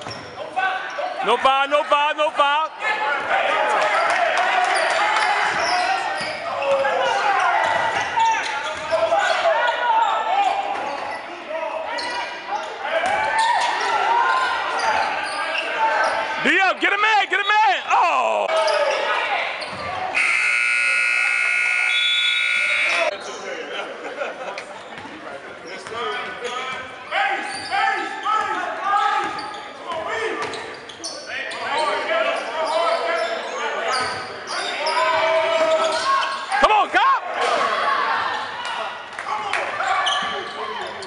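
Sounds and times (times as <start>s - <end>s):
voices echoing in a gym: 0.0s - 41.0s
scoreboard buzzer: 20.2s - 23.1s.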